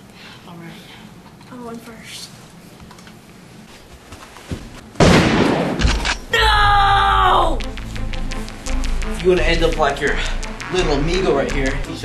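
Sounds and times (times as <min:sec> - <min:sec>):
gunshots: 0:05.0 - 0:06.2.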